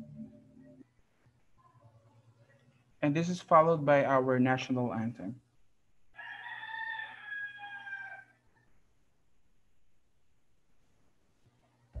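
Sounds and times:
rooster crowing: 6.2 - 8.4.

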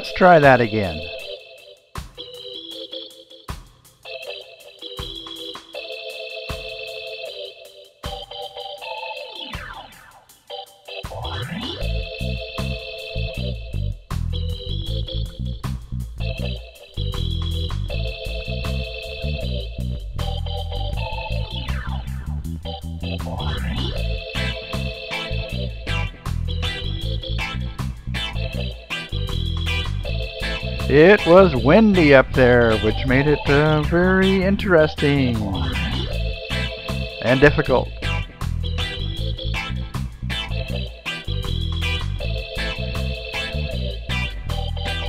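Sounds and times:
electronic keyboard chords: 0.0 - 45.0
bass and beat: 11.1 - 45.0.

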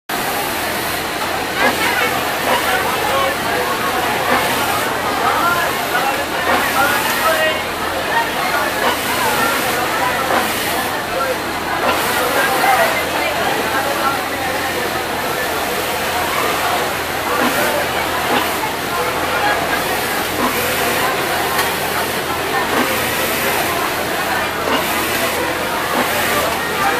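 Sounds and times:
sewing machines humming: 0.1 - 26.9
voices talking: 0.1 - 26.9.

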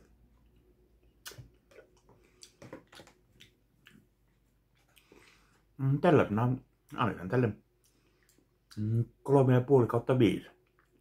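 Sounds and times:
person chewing: 0.0 - 5.7, 7.7 - 8.9.

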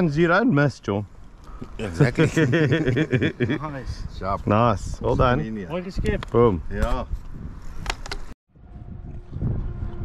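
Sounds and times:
wind rumbling on microphone: 1.1 - 10.0.

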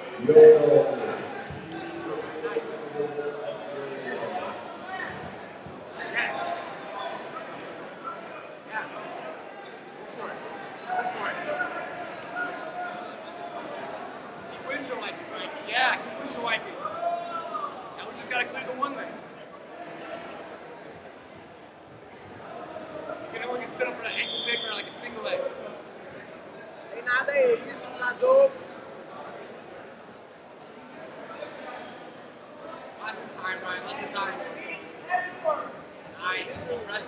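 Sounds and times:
chatter of many voices: 0.0 - 37.0.

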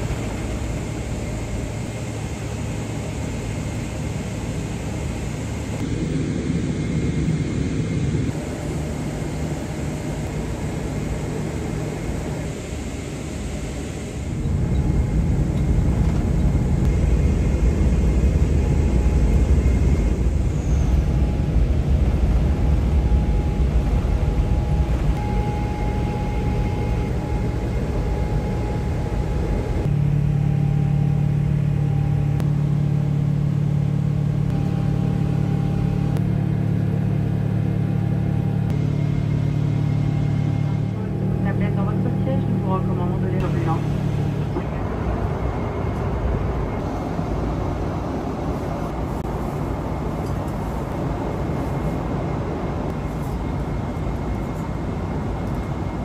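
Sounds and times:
jet engine cabin rumble: 0.0 - 56.0.

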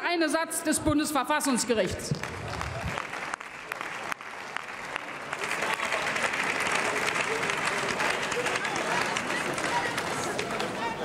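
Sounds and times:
crowd applauding: 2.1 - 11.0
scattered voices: 7.0 - 11.0.

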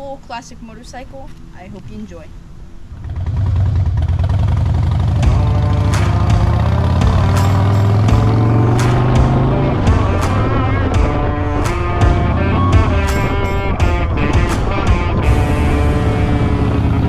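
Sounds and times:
steady low drone: 0.9 - 17.0
rock music with guitar: 4.9 - 17.0
drum strikes: 5.1 - 15.8.

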